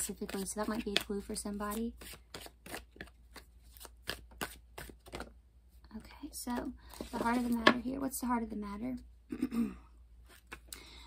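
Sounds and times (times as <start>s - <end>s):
cards being shuffled: 0.0s - 5.3s, 6.9s - 7.8s.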